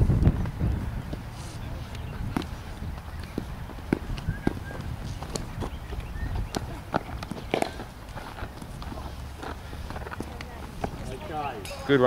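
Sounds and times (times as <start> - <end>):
steady low rumble: 0.0 - 11.2.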